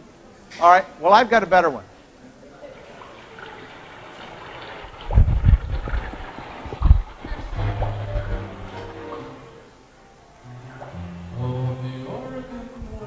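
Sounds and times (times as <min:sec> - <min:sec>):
recorded rain hiss: 0:00.0 - 0:13.0.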